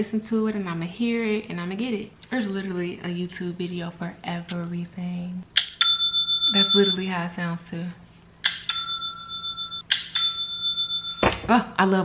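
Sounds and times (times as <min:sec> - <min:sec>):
notification chime from phone: 0:05.8 - 0:07.1, 0:08.7 - 0:11.5.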